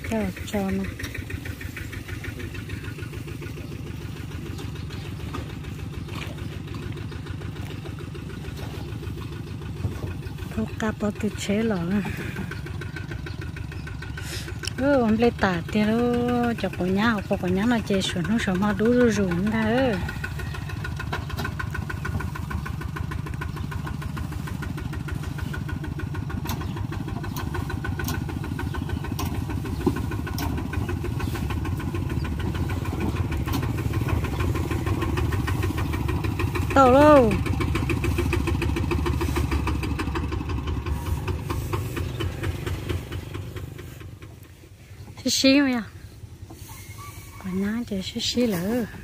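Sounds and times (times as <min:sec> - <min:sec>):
diesel tractor engine running: 0:00.0 - 0:49.0.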